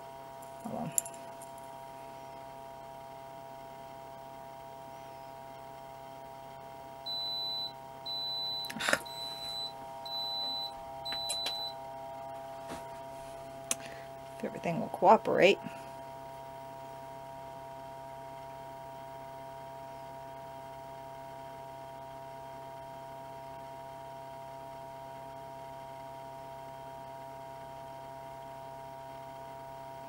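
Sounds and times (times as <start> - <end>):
steady multi-tone hum: 0.0 - 20.4.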